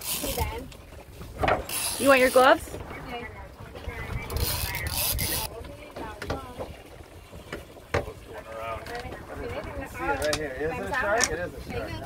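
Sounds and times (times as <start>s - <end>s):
low boat rumble: 0.0s - 12.0s
wind: 0.0s - 12.0s
faint voices: 1.8s - 12.0s.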